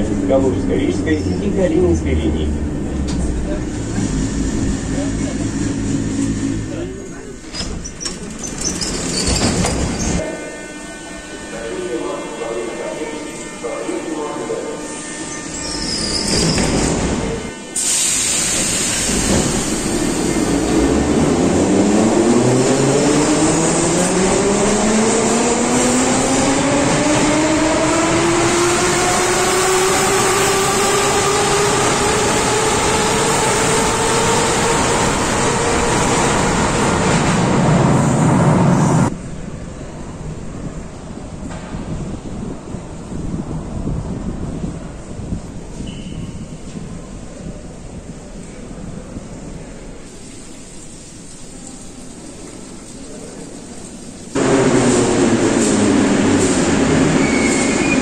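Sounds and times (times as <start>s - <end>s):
station platform noise: 0.0s - 58.0s
train running noise: 0.0s - 58.0s.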